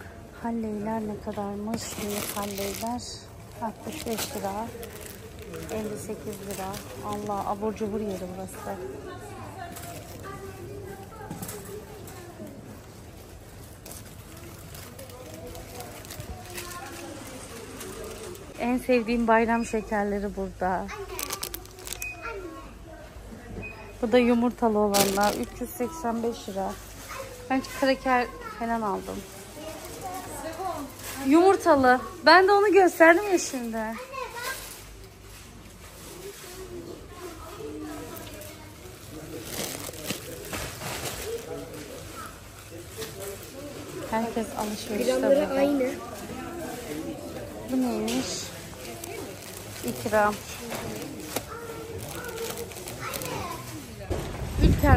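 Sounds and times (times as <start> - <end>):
indistinct shopper chatter: 0.0 - 54.9
rustling: 1.1 - 8.8, 20.9 - 22.3, 24.8 - 28.0, 34.3 - 54.9.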